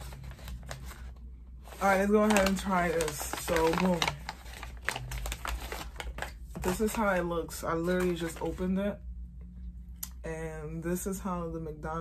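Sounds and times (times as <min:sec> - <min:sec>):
paper bag rustling: 0:00.0 - 0:08.8.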